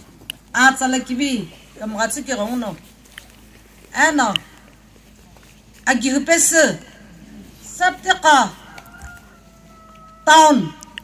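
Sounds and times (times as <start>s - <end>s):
rooster crowing: 8.3s - 11.0s.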